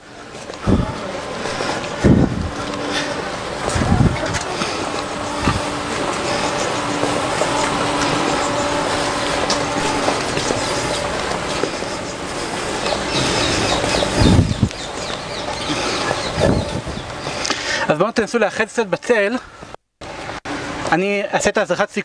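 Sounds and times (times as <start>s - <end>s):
cars driving past: 0.0s - 17.8s, 20.0s - 21.1s.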